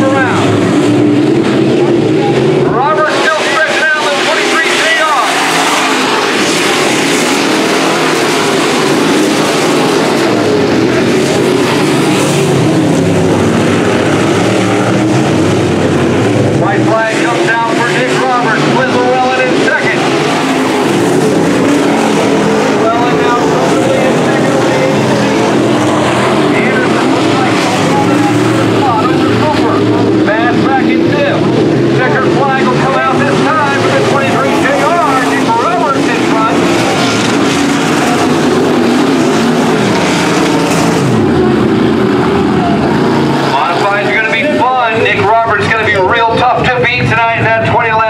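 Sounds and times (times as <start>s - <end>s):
race car engines revving: 0.0s - 48.0s.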